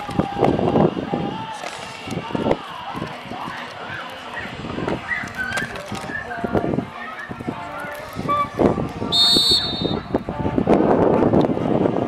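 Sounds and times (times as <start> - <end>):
trilled whistle blast: 9.1 - 10.1.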